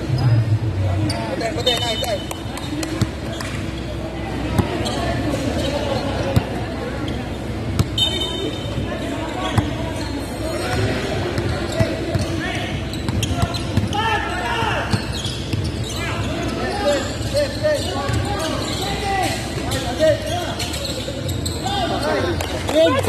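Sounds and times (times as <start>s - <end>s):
echoing voices and chatter: 0.0s - 23.0s.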